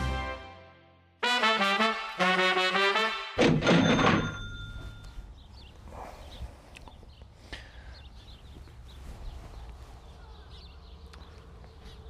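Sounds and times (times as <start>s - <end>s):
brass jingle: 0.0s - 4.9s.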